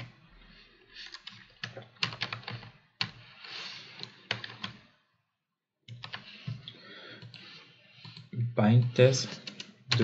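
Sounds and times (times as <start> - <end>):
computer keyboard typing: 1.0 - 3.2, 4.0 - 4.8, 5.9 - 6.4, 8.0 - 10.0.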